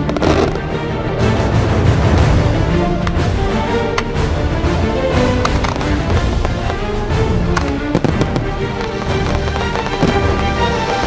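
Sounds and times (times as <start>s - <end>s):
firework shells bursting: 0.0s - 0.7s, 5.1s - 11.0s
orchestral music: 0.0s - 11.0s.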